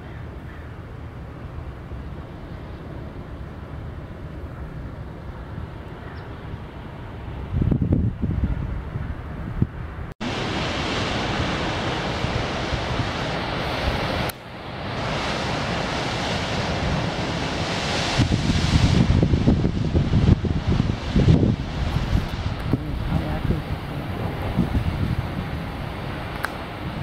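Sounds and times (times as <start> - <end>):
wind buffeting microphone: 1.9 - 27.0
ocean surf washing around rocks: 10.2 - 27.0.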